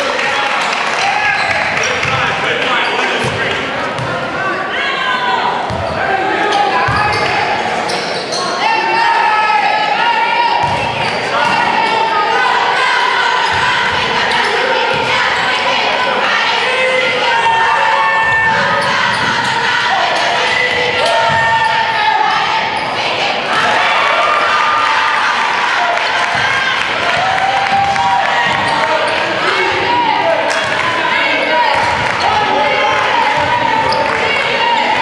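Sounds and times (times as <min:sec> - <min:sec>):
sneakers squeaking: 0:01.0 - 0:04.2, 0:05.6 - 0:08.7, 0:10.6 - 0:12.1, 0:13.2 - 0:15.7, 0:18.2 - 0:23.7, 0:27.8 - 0:35.0
people calling out: 0:04.0 - 0:35.0.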